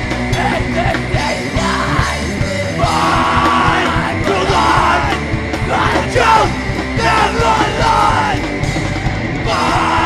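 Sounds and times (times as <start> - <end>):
punk rock band playing: 0.0 - 10.0
singer yelling: 0.3 - 8.6, 9.4 - 10.0.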